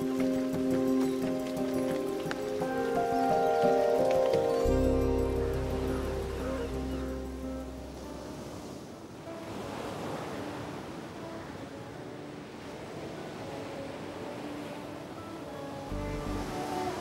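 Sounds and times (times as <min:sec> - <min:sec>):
low musical drone: 0:00.0 - 0:08.9, 0:15.2 - 0:17.0
ocean surf on beach: 0:00.0 - 0:17.0
soft background music: 0:00.0 - 0:17.0.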